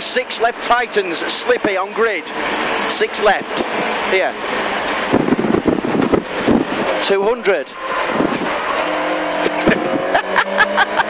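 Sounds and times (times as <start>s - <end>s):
car engine at steady revs: 0.0s - 11.0s.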